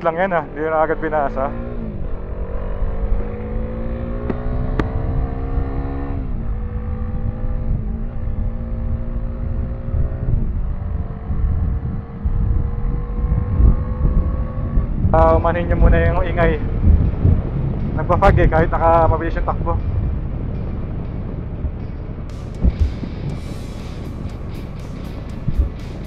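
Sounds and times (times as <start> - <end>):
motorcycle engine accelerating: 0.0 - 26.0
wind rumbling on microphone: 0.0 - 26.0.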